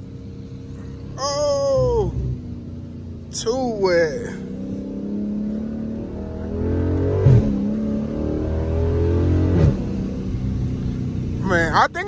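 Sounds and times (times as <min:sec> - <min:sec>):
car engine accelerating hard: 0:00.0 - 0:12.0.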